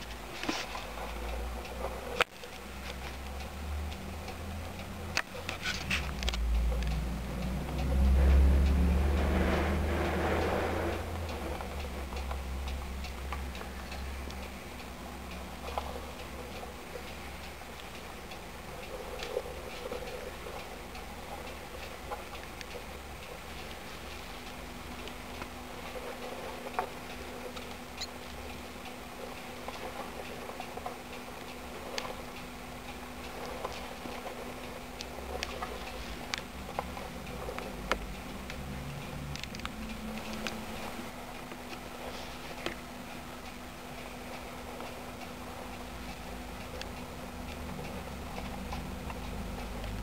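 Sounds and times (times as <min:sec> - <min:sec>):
light ticking clicks: 0:00.0 - 0:09.3, 0:09.9 - 0:50.0
low hum: 0:00.0 - 0:50.0.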